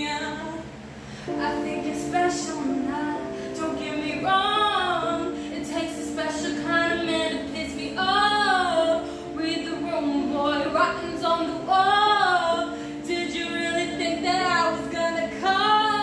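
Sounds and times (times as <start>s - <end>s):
woman singing pop song: 0.0s - 16.0s.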